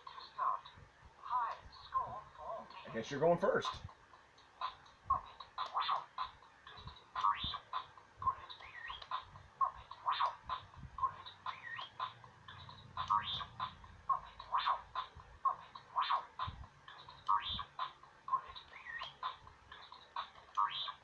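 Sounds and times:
electronic toy beeps and whistles: 8.3 - 9.3, 16.9 - 20.0.

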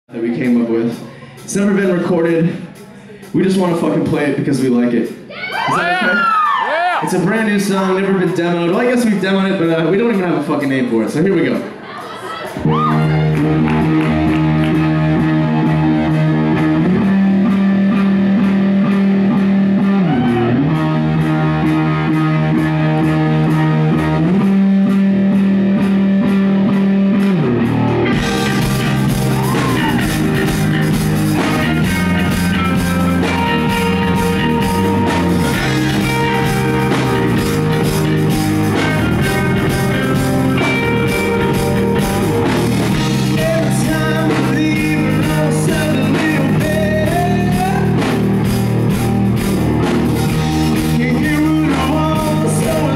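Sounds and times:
drums: 0.1 - 52.9
live rock band playing: 0.2 - 52.9
electric guitar chords: 12.5 - 52.9.

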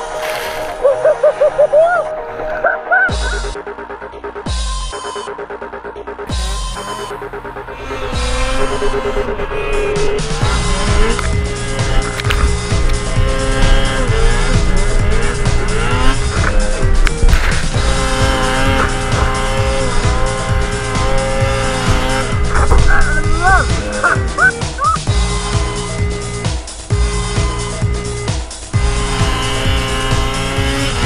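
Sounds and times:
snowmobile engines revving: 0.0 - 3.6, 6.3 - 31.0
electronic dance music: 22.5 - 25.1.

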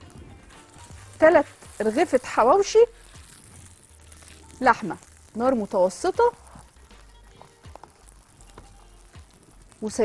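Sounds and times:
flatbread sizzling in frying pan: 0.0 - 10.0.

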